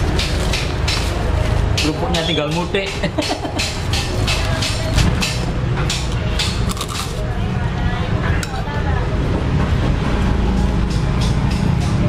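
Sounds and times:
low traffic rumble: 0.0 - 12.0
music with ticking beat: 1.8 - 6.7, 10.4 - 12.0.

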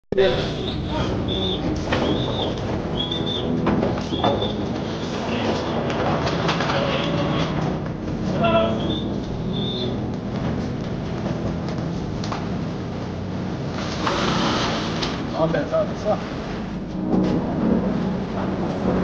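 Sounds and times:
voices: 0.2 - 10.0.

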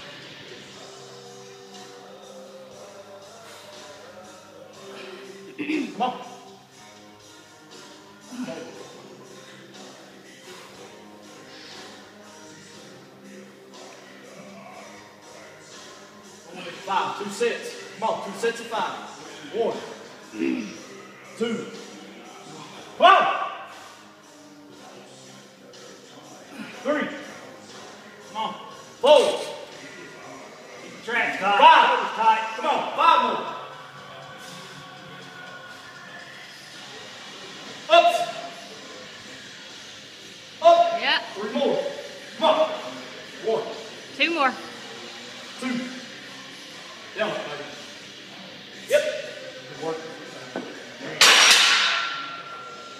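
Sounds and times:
steel barbell clanging on rack: 51.2 - 52.5.

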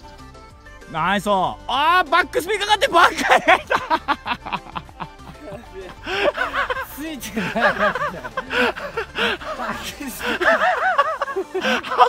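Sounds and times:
person laughing: 2.9 - 12.0.

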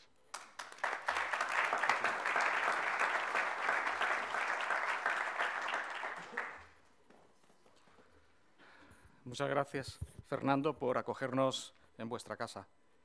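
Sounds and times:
audience applauding: 0.3 - 6.8.

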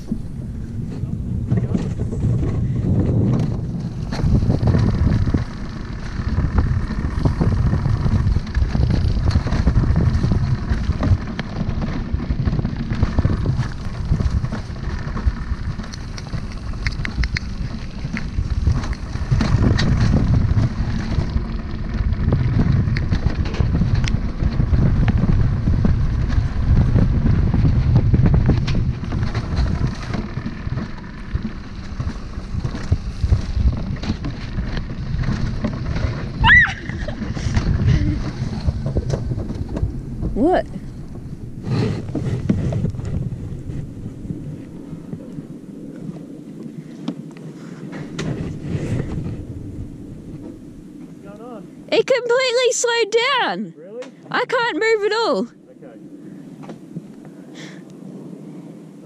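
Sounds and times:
sled rumbling on metal rails: 0.0 - 53.6
wind on microphone: 0.0 - 53.6.

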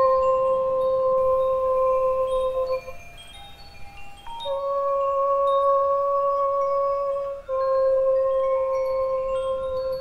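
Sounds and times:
long held note: 0.0 - 3.0, 4.4 - 10.0
faint chime-like tones: 0.0 - 10.0.

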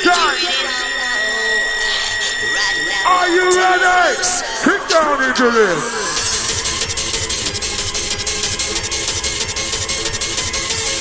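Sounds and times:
sustained synth tones: 0.0 - 11.0.

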